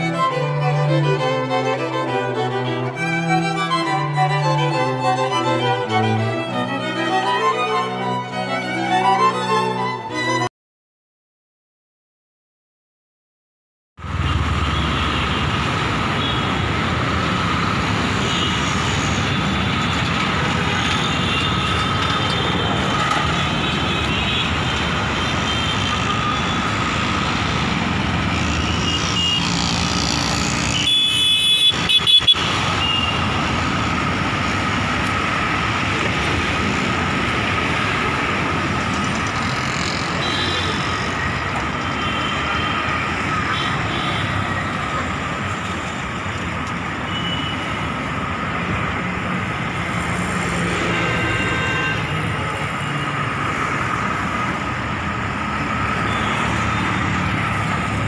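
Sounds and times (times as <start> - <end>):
city street traffic hum: 0.0 - 10.5, 14.0 - 58.0.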